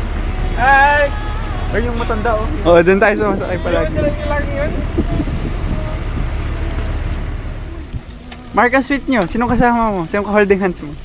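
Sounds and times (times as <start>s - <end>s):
low outdoor rumble: 0.0s - 11.0s
person's voice: 0.4s - 6.1s.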